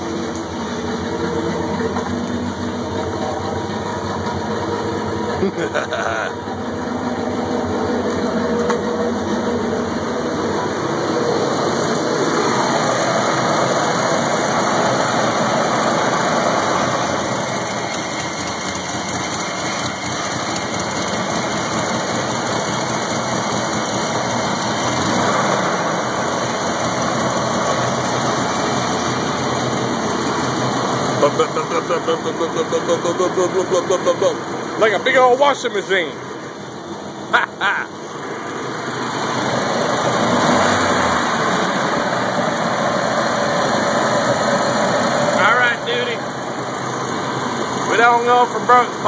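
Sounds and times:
car engine running: 0:00.0 - 0:49.0.

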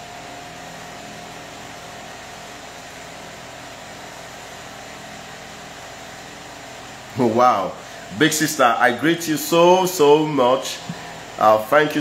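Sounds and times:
even room hiss: 0:00.0 - 0:12.0.

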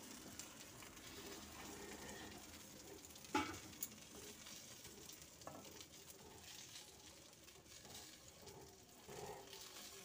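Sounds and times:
oil sizzling in a pan: 0:00.0 - 0:10.0.

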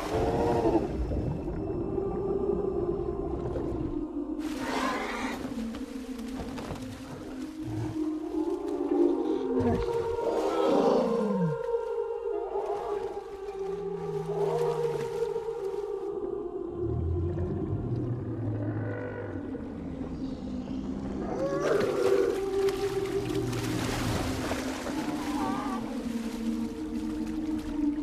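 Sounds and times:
orchestral score: 0:00.0 - 0:28.0.

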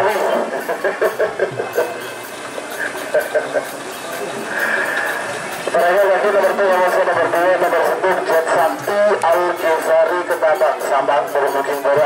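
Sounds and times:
reedy wind instrument melody: 0:00.0 - 0:11.9
man announcing over loudspeaker: 0:05.7 - 0:12.0.

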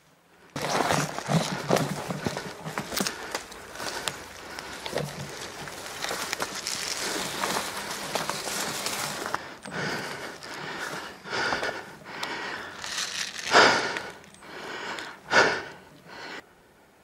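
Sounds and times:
brushing through undergrowth: 0:00.6 - 0:09.4, 0:12.8 - 0:14.4
person breathing heavily: 0:01.2 - 0:16.6.

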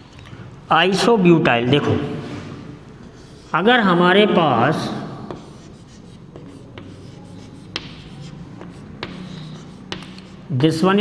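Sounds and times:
chalk tapping and scratching: 0:03.0 - 0:03.7, 0:05.2 - 0:10.6.

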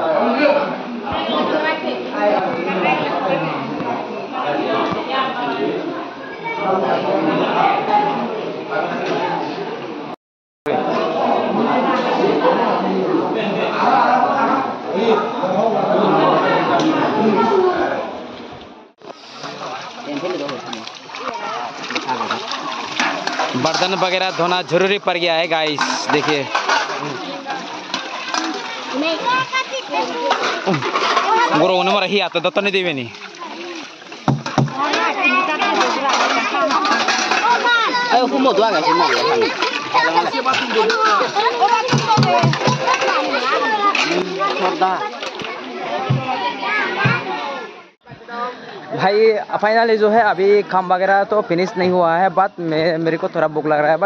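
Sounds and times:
water splashing and dripping: 0:19.0 - 0:46.5
voices chatting: 0:19.0 - 0:53.7
metal plates being rinsed: 0:19.1 - 0:46.5.

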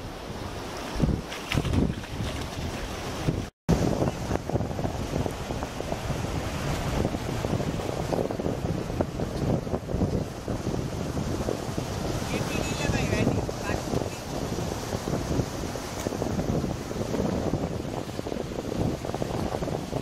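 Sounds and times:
shallow surf washing up: 0:00.0 - 0:20.0
wind buffeting microphone: 0:00.0 - 0:20.0.

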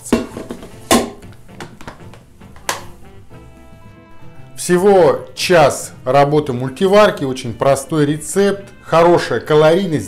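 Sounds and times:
cooker lid shutting: 0:00.0 - 0:02.0
metal bowl knocking in cooker: 0:00.0 - 0:02.8
background music: 0:00.0 - 0:10.0.

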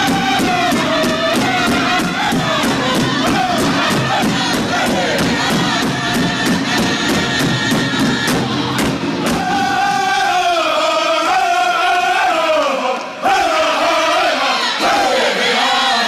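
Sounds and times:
large drum beaten with sticks: 0:00.0 - 0:09.9
group singing in full voice: 0:00.0 - 0:16.0.

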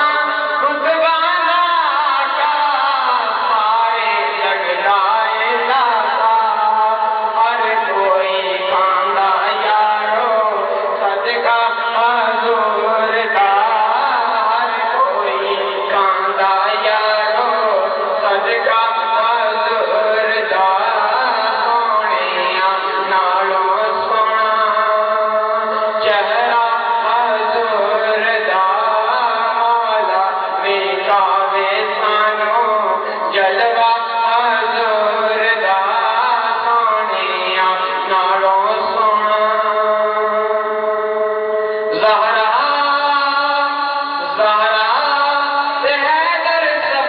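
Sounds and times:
man chanting into a microphone: 0:00.0 - 0:47.0.

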